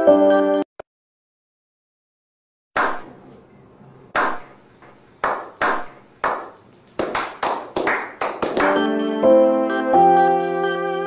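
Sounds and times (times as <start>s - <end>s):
piano music: 0.0s - 0.6s, 8.6s - 11.0s
hand claps: 4.2s - 4.5s, 5.2s - 8.9s.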